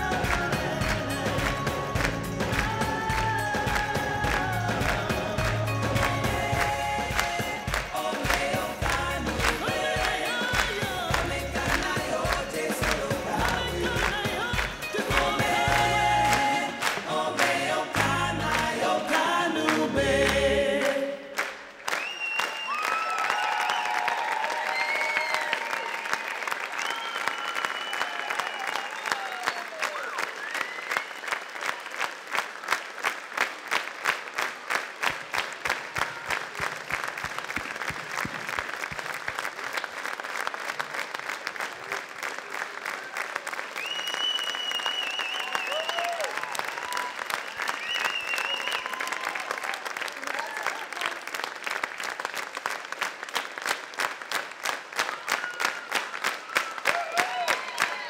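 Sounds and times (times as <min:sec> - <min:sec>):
audience applauding: 0:00.0 - 0:58.0
whistles: 0:21.9 - 0:24.1, 0:24.7 - 0:31.5, 0:43.8 - 0:49.4, 0:55.1 - 0:57.1
shouts: 0:22.4 - 0:30.8, 0:45.2 - 0:47.7, 0:48.3 - 0:51.2, 0:55.1 - 0:58.0.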